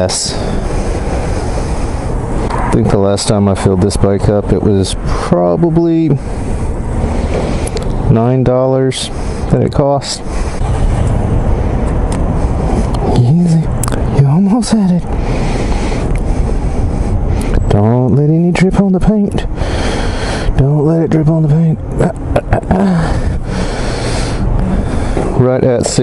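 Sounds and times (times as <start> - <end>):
low rumble: 0.0 - 5.1, 10.2 - 18.5, 19.4 - 25.6.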